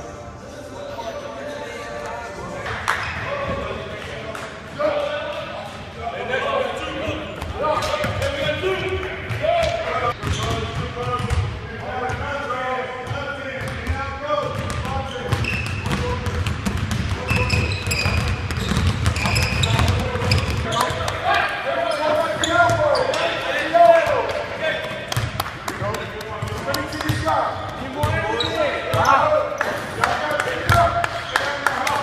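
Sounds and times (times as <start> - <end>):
sneakers squeaking on floor: 2.9 - 3.7, 9.3 - 11.4, 13.0 - 21.2, 21.8 - 23.5, 26.4 - 29.6
basketballs bouncing on hardwood: 13.0 - 21.0.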